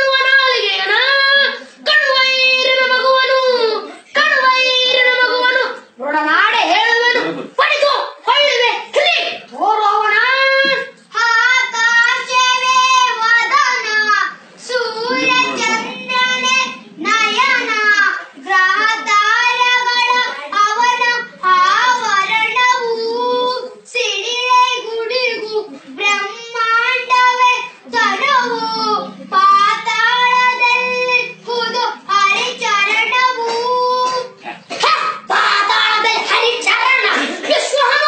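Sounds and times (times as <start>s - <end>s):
child singing: 0.0s - 38.0s.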